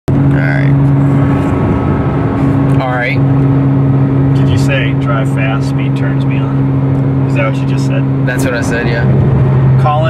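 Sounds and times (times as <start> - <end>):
car engine droning: 0.1 - 10.0
tyre and road noise: 0.1 - 10.0.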